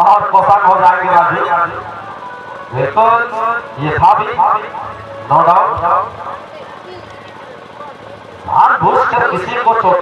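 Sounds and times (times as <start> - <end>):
music: 1.0 - 6.6
man commentating: 8.5 - 10.0.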